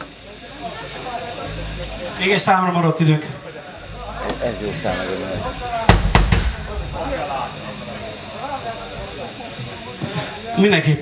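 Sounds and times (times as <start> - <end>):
loud thumps: 5.9 - 7.1.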